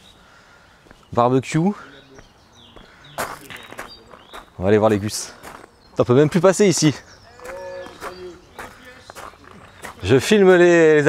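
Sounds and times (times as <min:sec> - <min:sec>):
faint distant voices: 0:01.5 - 0:10.9
footsteps on gravel: 0:02.0 - 0:10.7.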